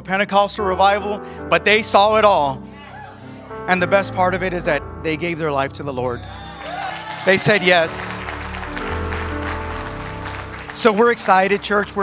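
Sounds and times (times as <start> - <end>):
keyboard sustained chords: 0.0 - 12.0
congregation applause: 6.2 - 12.0.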